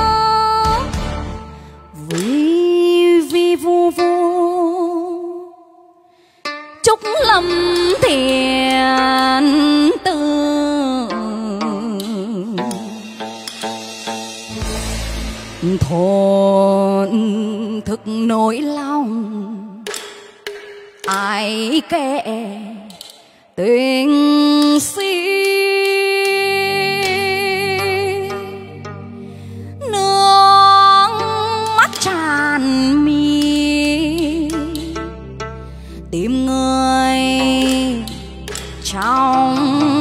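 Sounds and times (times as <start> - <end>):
woman singing with vibrato: 0.0 - 1.0, 1.9 - 6.1, 6.8 - 13.1, 15.6 - 19.9, 21.1 - 23.0, 23.6 - 28.9, 29.8 - 35.1, 36.1 - 40.0
backing music: 0.0 - 3.5, 6.8 - 18.4, 25.4 - 40.0.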